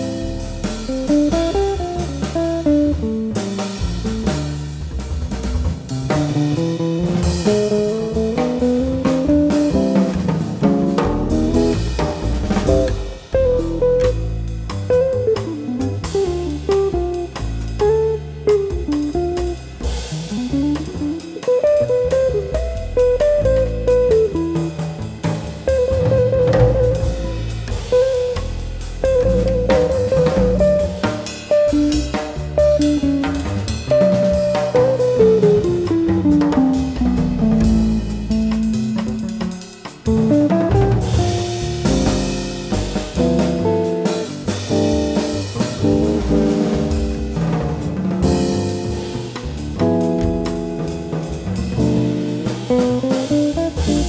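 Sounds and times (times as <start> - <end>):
bass: 0.0 - 54.0
drum kit: 0.0 - 54.0
electric jazz guitar solo: 0.0 - 54.0.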